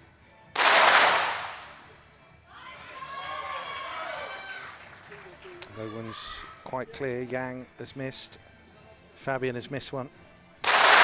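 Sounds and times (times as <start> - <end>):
pistol shots: 0.6 - 1.8, 10.6 - 11.0.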